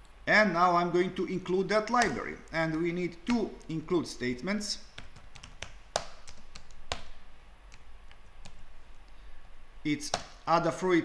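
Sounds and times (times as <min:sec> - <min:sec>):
keyboard keys clicking: 0:04.9 - 0:07.1.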